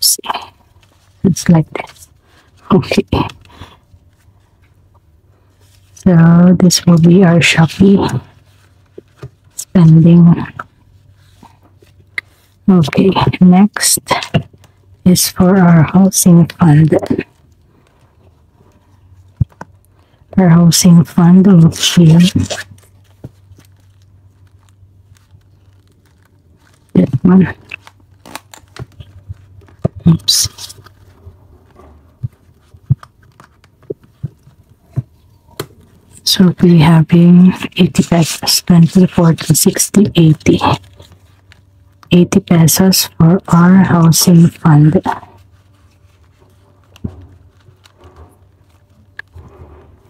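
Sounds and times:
low steady hum: 0:00.0 - 0:50.0
paper banknotes rustling: 0:20.8 - 0:42.6, 0:43.3 - 0:50.0
plastic pouch crinkling: 0:21.8 - 0:36.7, 0:37.9 - 0:42.1, 0:45.2 - 0:50.0.

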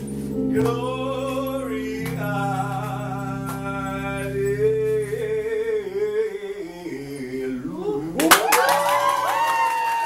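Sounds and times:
keyboard chord: 0:00.0 - 0:05.8.

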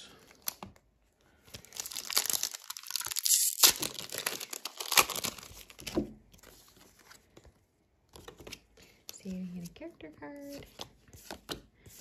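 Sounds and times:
foil wrapper tearing and crinkling: 0:01.6 - 0:05.9.

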